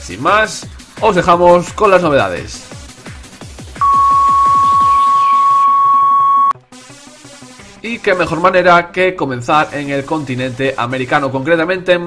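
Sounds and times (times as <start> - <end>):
loud steady electronic beep: 3.8 - 6.6
electronic music with falling sweeps: 3.8 - 7.5.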